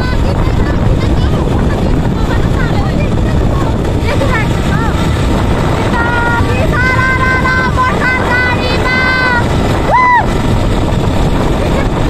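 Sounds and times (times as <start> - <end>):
vehicle rumble: 0.0 - 12.0
wind buffeting microphone: 0.0 - 12.0
women shouting and laughing: 5.8 - 10.5.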